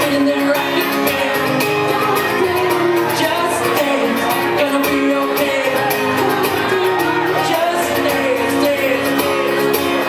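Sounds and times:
acoustic guitar chords: 0:00.0 - 0:10.0
man singing: 0:00.0 - 0:10.0.

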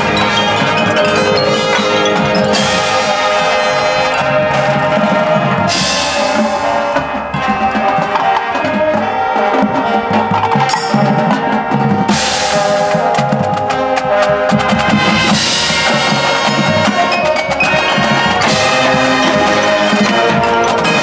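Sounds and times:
mallet percussion: 0:00.0 - 0:21.0
marching band playing: 0:00.0 - 0:21.0.

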